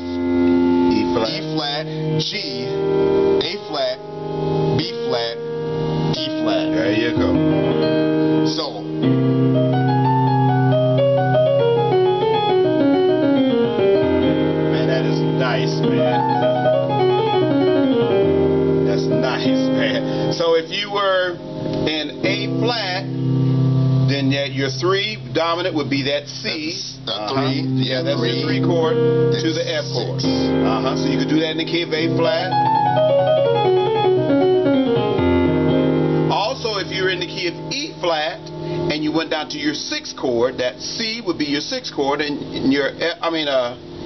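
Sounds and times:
gospel-style piano: 0.0 - 44.0.

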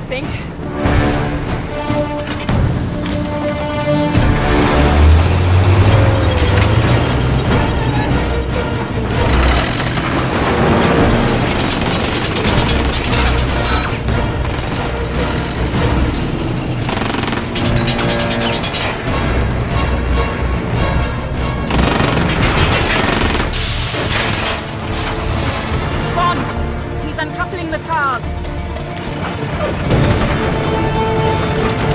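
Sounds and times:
action film music: 0.0 - 31.9
rapid gunfire bursts: 11.2 - 13.4, 14.2 - 15.2, 16.8 - 18.7, 21.7 - 24.6.

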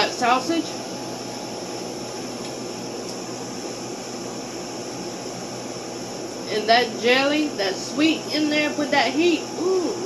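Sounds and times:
air conditioning hiss: 0.0 - 10.0.

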